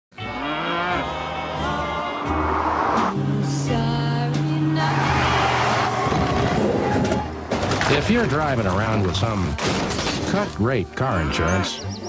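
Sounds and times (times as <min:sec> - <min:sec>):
cow mooing: 0:00.2 - 0:03.1, 0:11.1 - 0:11.8
music playing: 0:00.2 - 0:12.0.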